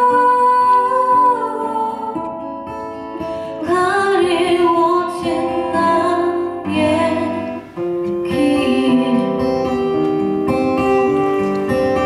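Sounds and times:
woman singing: 0.0 - 10.1
acoustic guitar: 0.0 - 12.0.

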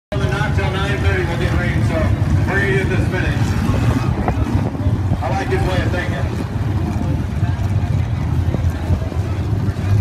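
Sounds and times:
man talking indistinctly: 0.1 - 4.0, 4.9 - 6.5
car engines rumbling: 0.1 - 10.0.

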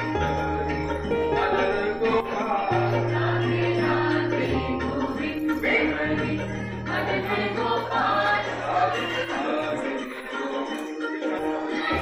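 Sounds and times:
group of voices singing: 0.0 - 12.0.

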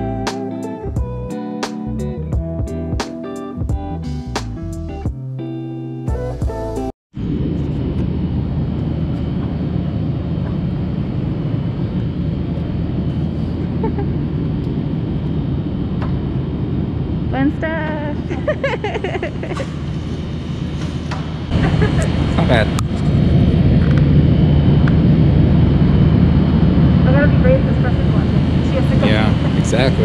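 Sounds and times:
guitar music: 0.0 - 6.9
low background rumble: 7.2 - 30.0.

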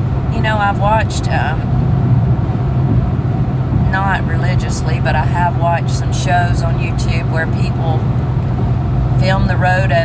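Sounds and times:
car engine and road drone: 0.0 - 10.0.

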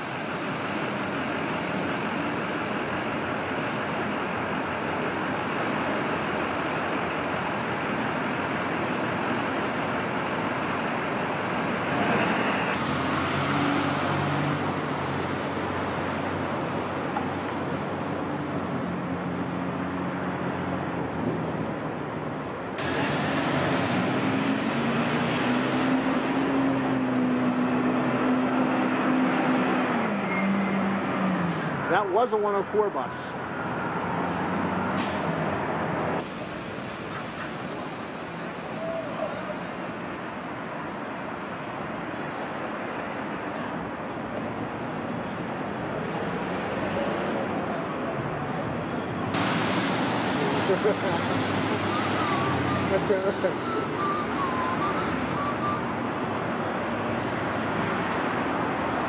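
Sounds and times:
diesel bus engine: 0.0 - 59.0
street traffic noise: 0.0 - 59.0.

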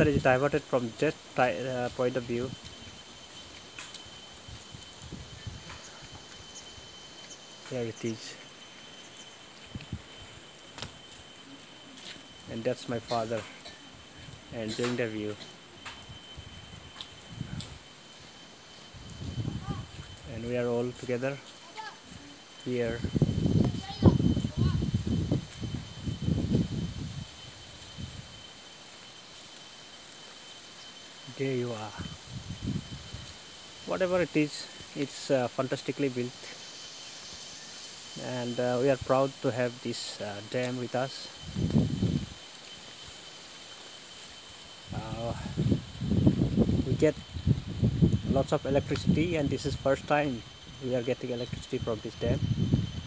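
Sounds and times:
faint hiss: 0.0 - 53.0
high-pitched insect drone: 0.0 - 53.0
faint high-pitched tone: 9.5 - 26.9
low rumble on microphone: 41.4 - 42.4.

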